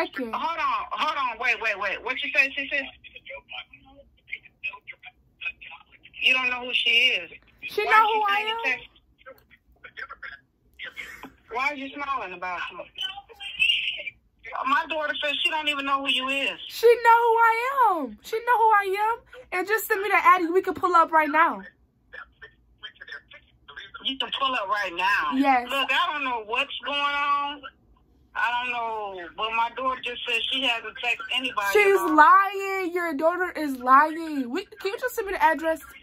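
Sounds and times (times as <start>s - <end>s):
speech through phone speaker: 0.0s - 27.8s, 28.4s - 36.0s.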